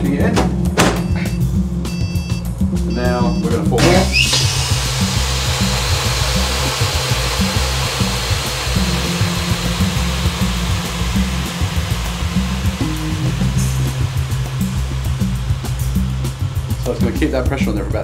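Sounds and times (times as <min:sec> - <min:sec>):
background music with bass line: 0:00.0 - 0:18.0
vacuum rushing noise: 0:03.8 - 0:18.0.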